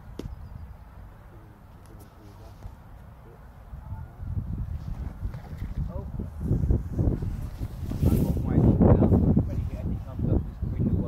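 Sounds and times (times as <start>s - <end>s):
faint muffled voices: 1.2s - 4.4s
wind on microphone: 1.9s - 11.0s.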